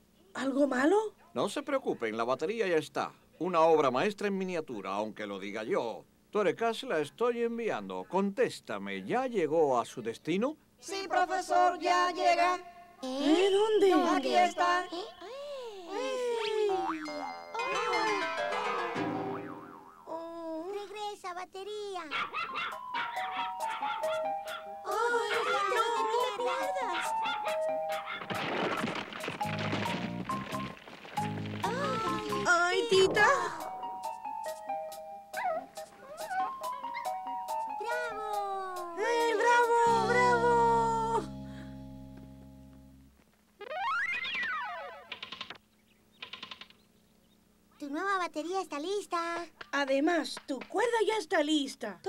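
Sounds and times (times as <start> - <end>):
cartoon gliding sound effect: 13.3 - 20.1, 31.7 - 33.8, 43.6 - 45.1
cartoon background music: 16.8 - 20.0, 22.6 - 28.2, 31.2 - 43.0
small dog barking: 22.0 - 28.3
held music chord: 39.9 - 43.1.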